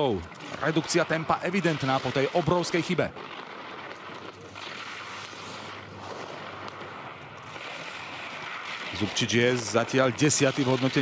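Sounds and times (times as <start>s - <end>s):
skis scraping on snow: 0.0s - 11.0s.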